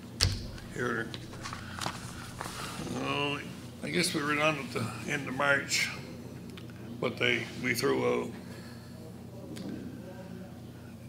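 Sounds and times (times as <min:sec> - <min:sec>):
light knocks: 0:00.0 - 0:02.9
low room noise: 0:00.0 - 0:11.0.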